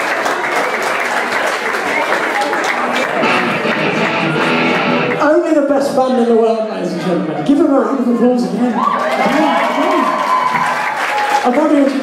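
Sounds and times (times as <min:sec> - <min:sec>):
crowd voices: 0:00.0 - 0:12.0
electric guitar strumming: 0:02.9 - 0:05.2.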